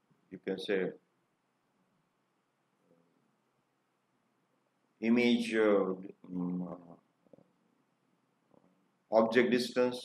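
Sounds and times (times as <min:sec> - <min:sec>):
man saying uhh: 0:05.0 - 0:06.9.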